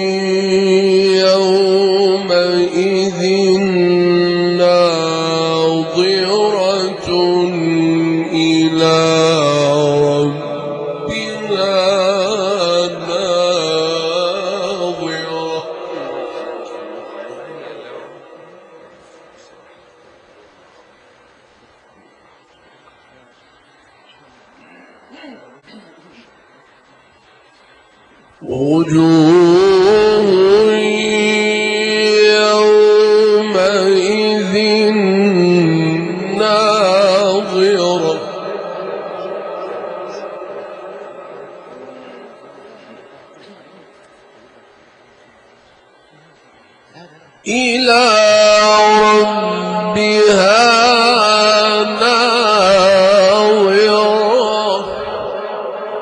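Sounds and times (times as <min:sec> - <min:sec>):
man chanting into microphone: 0:00.0 - 0:20.0, 0:28.4 - 0:43.0, 0:47.0 - 0:56.0.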